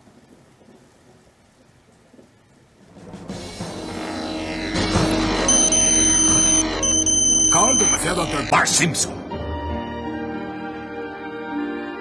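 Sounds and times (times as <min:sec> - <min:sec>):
high electronic beep: 0:05.5 - 0:08.1.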